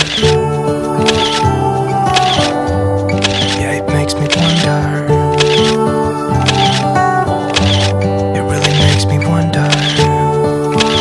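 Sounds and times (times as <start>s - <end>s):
slow song backing music: 0.0s - 11.0s.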